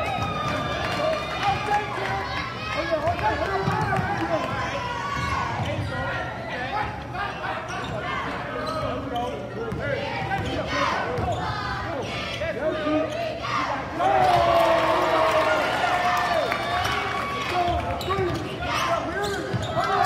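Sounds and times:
voices talking and shouting: 0.0s - 20.0s.

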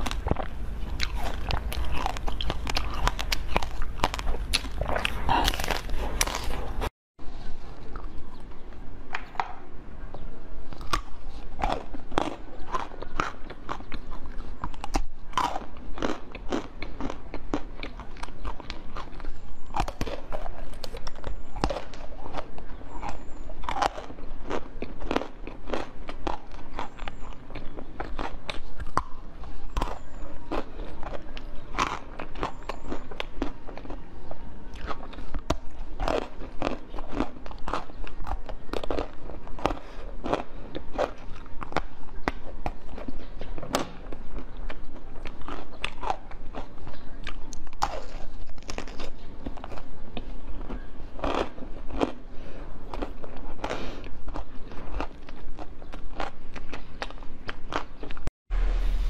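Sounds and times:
person crunching food: 0.0s - 6.9s, 10.1s - 58.3s.

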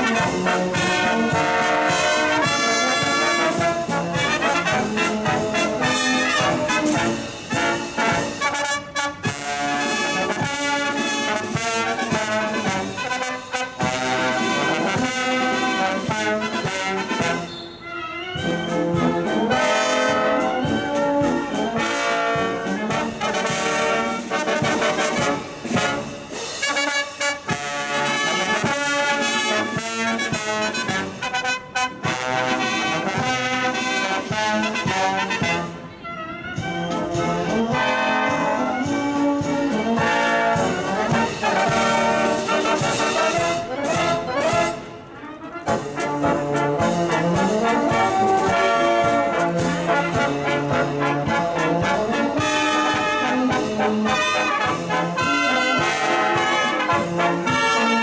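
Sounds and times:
marching band playing: 0.0s - 58.0s.

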